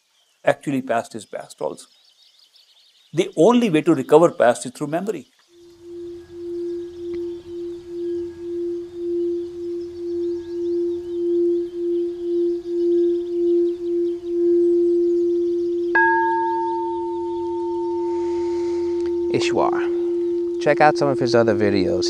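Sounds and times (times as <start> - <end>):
singing bowl low tone: 5.5 - 22.0.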